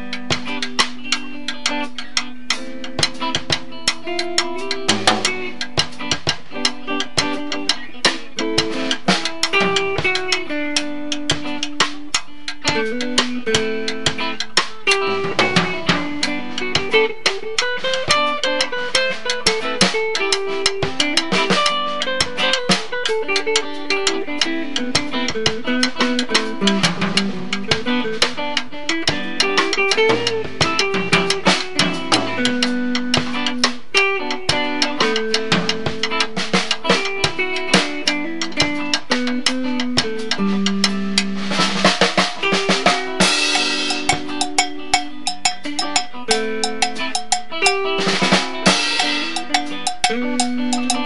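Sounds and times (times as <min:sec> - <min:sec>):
drum kit: 0:00.0 - 0:51.0
electric guitar melody: 0:00.0 - 0:51.0
cymbals: 0:39.6 - 0:51.0.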